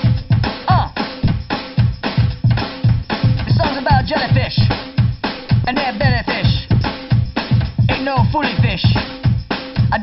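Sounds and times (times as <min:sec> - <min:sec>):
drum kit playing a steady beat: 0:00.0 - 0:10.0.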